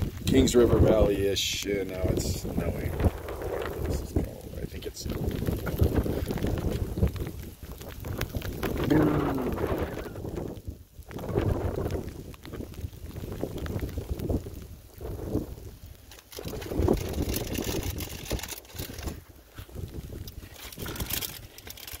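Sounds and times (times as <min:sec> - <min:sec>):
gusty wind on microphone: 0:00.0 - 0:22.0.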